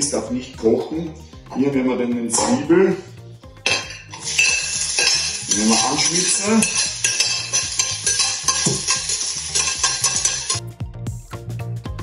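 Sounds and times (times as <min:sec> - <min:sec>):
background music with steady beat: 0:00.0 - 0:12.0
onion sizzling in frying pan: 0:04.0 - 0:10.6.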